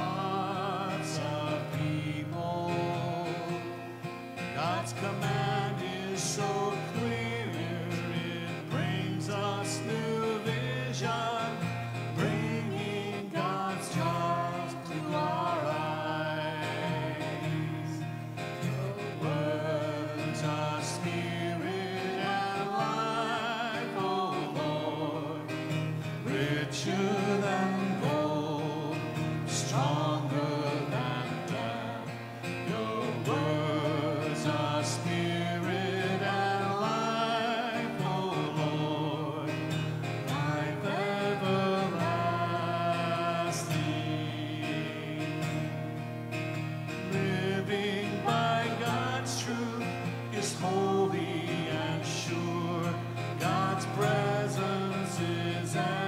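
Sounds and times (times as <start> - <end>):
person singing with vibrato: 0.0 - 45.8, 46.9 - 56.0
guitar accompaniment: 0.0 - 56.0.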